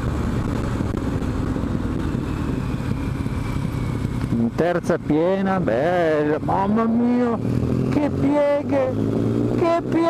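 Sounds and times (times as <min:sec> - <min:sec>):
motorcycle engine running under load: 0:00.0 - 0:10.0.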